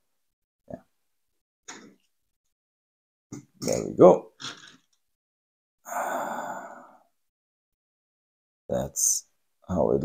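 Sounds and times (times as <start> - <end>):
man sighing: 5.9 - 7.1.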